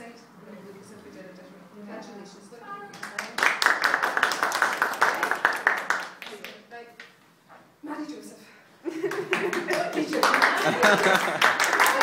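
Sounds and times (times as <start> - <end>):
people clapping: 2.9 - 7.1, 9.0 - 12.0.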